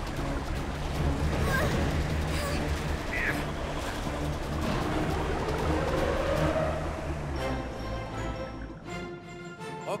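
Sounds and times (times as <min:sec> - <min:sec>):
rushing water: 0:00.0 - 0:09.9
dramatic background music: 0:00.0 - 0:10.0.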